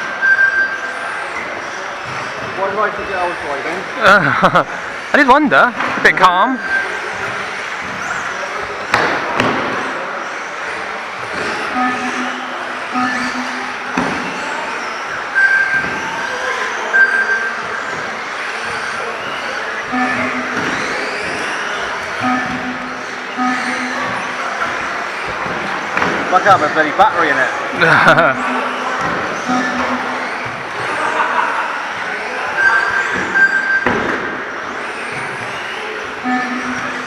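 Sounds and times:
short electronic beeps: 0.2s - 1.0s, 6.4s - 7.1s, 11.6s - 14.5s, 15.3s - 16.2s, 16.9s - 17.6s, 19.9s - 24.6s, 28.1s - 30.5s, 32.5s - 34.0s, 36.2s - 37.0s
electric toy car motors whining: 6.7s - 9.0s, 9.7s - 33.7s, 34.4s - 37.0s.

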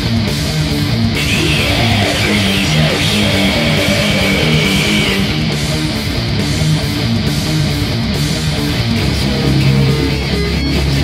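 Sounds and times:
bass guitar: 0.0s - 11.0s
distorted electric guitars: 0.0s - 11.0s.

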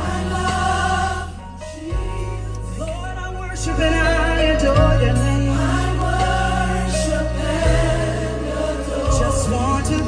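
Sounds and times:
gospel song with choir vocals: 0.0s - 10.0s
sustained bass notes: 0.0s - 10.0s.

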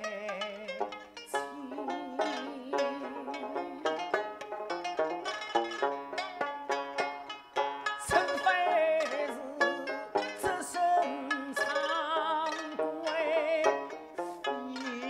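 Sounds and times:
person singing: 0.0s - 4.4s, 7.8s - 15.0s
plucked string instruments: 0.0s - 15.0s.

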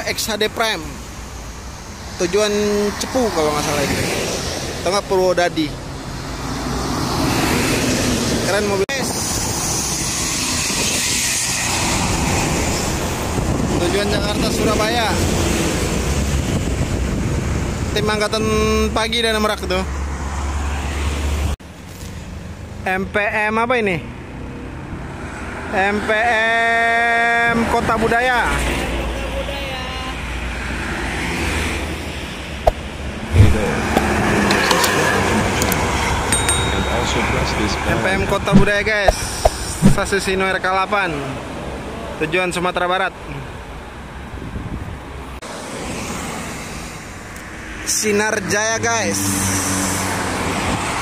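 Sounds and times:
heavy trucks passing on highway: 0.0s - 17.9s, 30.0s - 42.2s, 43.6s - 51.0s
steady traffic noise: 0.0s - 51.0s.

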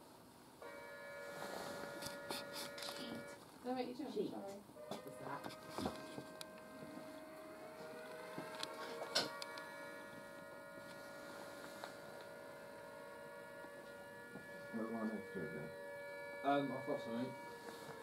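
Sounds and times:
electrical hum of held tones: 0.0s - 18.0s.

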